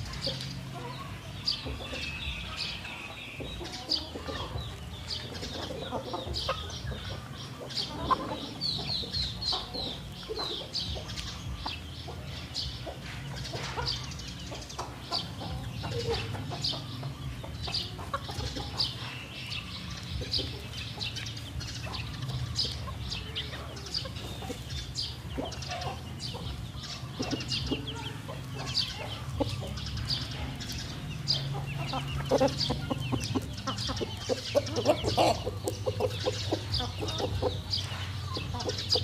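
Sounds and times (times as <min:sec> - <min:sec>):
chickens clucking: 0:00.0 - 0:39.0.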